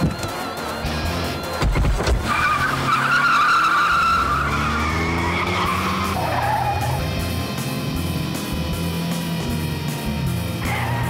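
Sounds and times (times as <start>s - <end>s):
tyres squealing: 0.0s - 7.2s
car engine revving: 0.0s - 11.0s.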